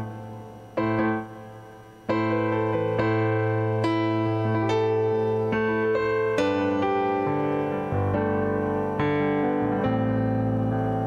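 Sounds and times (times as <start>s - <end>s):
keyboard playing slow chords: 0.0s - 11.0s.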